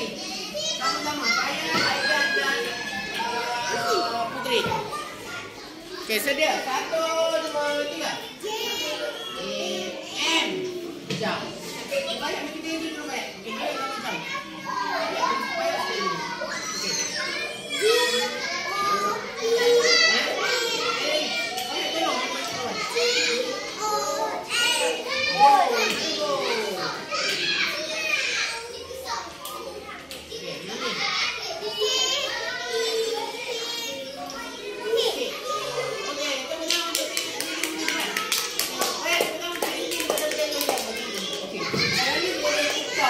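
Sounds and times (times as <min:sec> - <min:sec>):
children speaking: 0:00.0 - 0:43.0.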